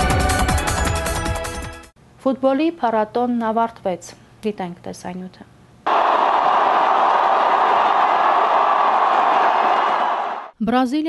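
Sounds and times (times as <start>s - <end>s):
crowd of fans cheering: 5.9s - 10.5s.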